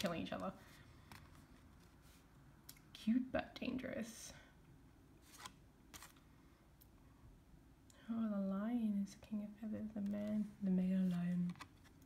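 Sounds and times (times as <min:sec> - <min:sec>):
card sliding: 0:05.2 - 0:06.2.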